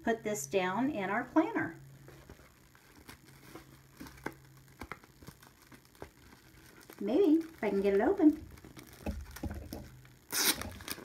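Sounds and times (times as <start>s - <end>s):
plastic sleeve crinkling and clicking: 2.0s - 11.0s.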